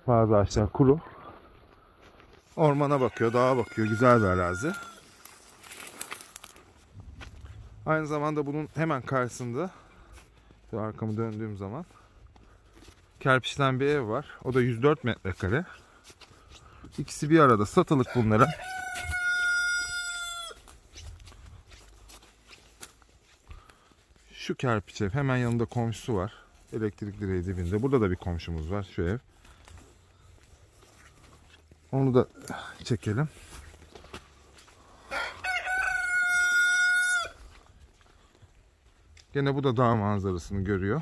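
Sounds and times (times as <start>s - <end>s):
rooster crowing: 2.6s - 5.2s, 18.0s - 20.6s, 35.0s - 37.5s.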